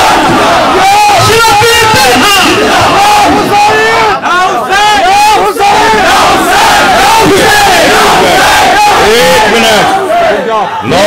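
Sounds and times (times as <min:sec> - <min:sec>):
crowd of men shouting: 0:00.0 - 0:11.0.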